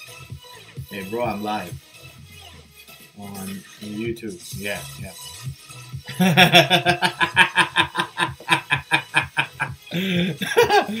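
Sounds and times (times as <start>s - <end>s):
man chuckling breathily: 6.1s - 11.0s.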